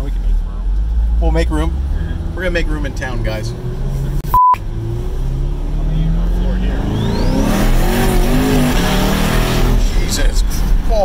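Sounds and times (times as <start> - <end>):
car engine running at low revs: 0.0 - 11.0
censor bleep: 4.2 - 4.6, 6.8 - 7.5.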